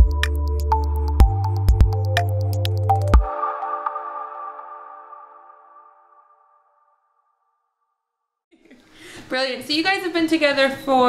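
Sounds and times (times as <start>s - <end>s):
electronic jingle chord: 3.0s - 6.8s.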